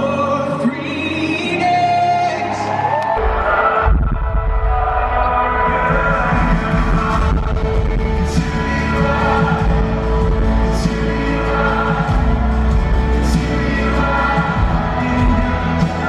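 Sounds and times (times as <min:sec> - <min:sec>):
worship band with singing: 0:00.0 - 0:16.0
song with heavy bass: 0:03.2 - 0:16.0.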